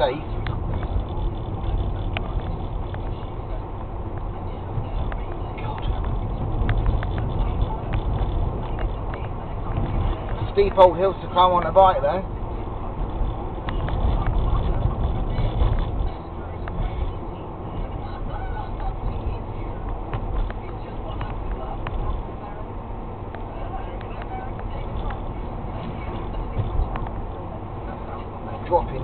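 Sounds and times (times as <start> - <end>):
car engine and tyre rumble: 0.0 - 29.0
light ticks: 0.3 - 10.8, 23.3 - 28.0.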